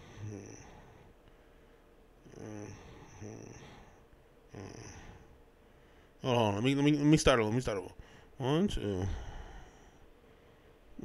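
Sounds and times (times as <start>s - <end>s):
man murmuring: 0.0s - 0.8s, 2.2s - 3.9s, 4.5s - 5.3s, 6.3s - 9.4s.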